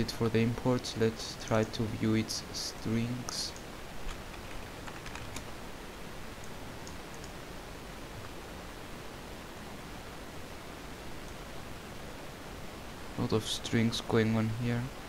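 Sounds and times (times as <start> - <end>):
steady hiss: 0.0 - 15.0
faint keyboard keystrokes: 3.3 - 5.5.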